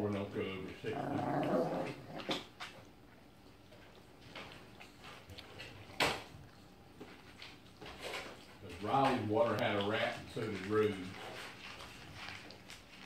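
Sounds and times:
dogs crunching dry kibble: 0.1s - 13.0s.

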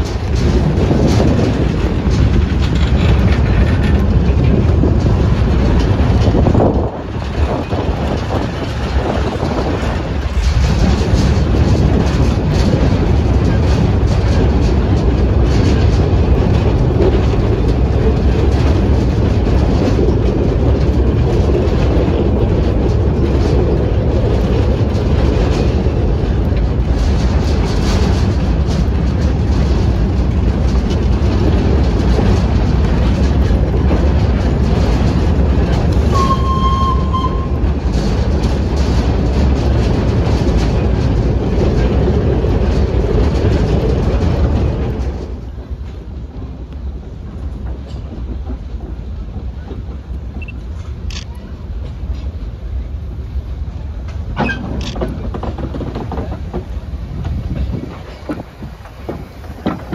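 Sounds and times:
train carriage rumbling: 0.0s - 59.9s
wheels clattering on rails: 0.0s - 59.9s
brief high tone: 36.1s - 37.5s.

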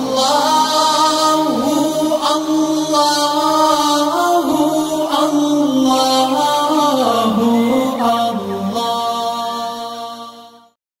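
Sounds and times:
person singing devotional chant: 0.0s - 10.8s.

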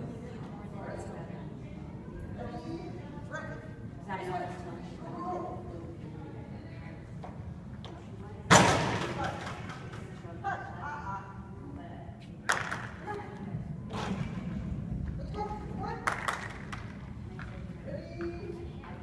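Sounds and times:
sharp thuds echoing in a hall: 8.5s - 9.8s.

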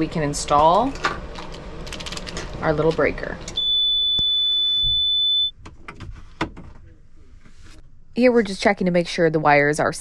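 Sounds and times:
inverter alarm long high beep: 3.6s - 5.6s.

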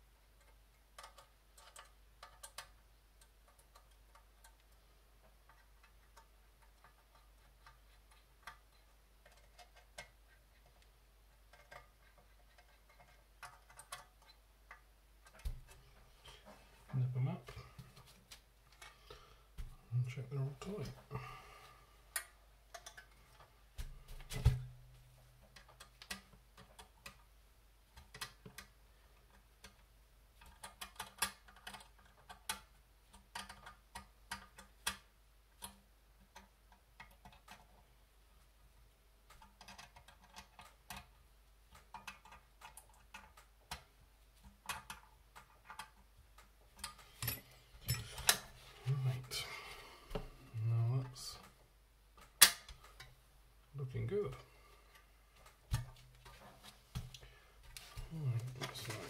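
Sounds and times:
small metal parts clicking: 0.4s - 4.7s.

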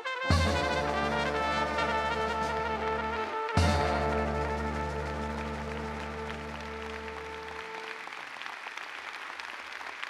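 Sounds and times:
large audience applauding: 4.0s - 10.0s.

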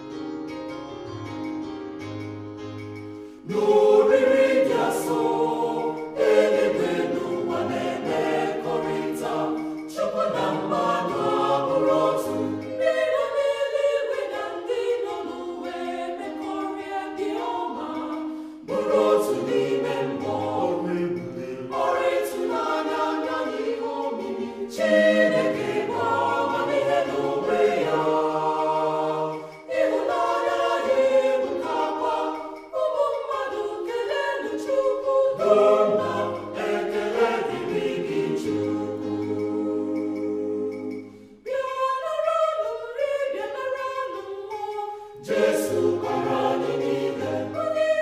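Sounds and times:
choir singing: 3.4s - 48.0s.

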